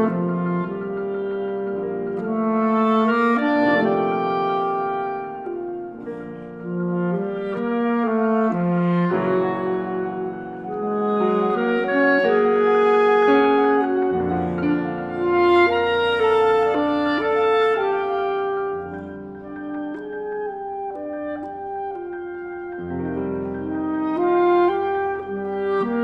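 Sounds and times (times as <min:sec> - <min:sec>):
bass clarinet: 0:00.0 - 0:26.0
clarinet: 0:00.0 - 0:26.0
piano: 0:00.0 - 0:26.0.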